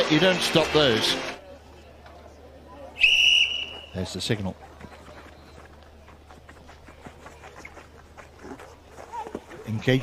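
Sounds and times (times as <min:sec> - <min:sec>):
stadium hum: 0:00.0 - 0:10.0.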